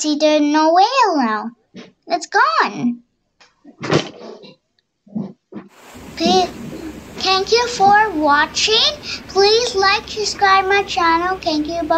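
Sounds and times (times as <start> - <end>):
steady hiss: 5.6 - 11.9.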